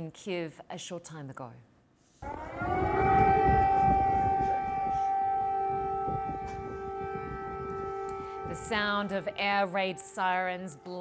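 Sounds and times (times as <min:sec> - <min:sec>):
air raid sirens blaring: 0:02.2 - 0:10.4.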